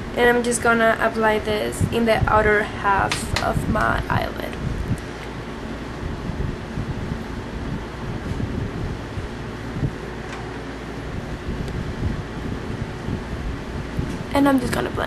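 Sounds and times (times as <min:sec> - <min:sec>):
low rumble and hiss: 0:00.0 - 0:15.0.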